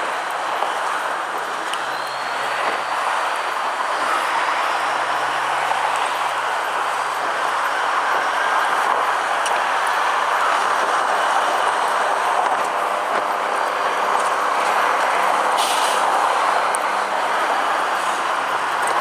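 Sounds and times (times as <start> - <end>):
road and traffic noise: 0.0 - 19.0.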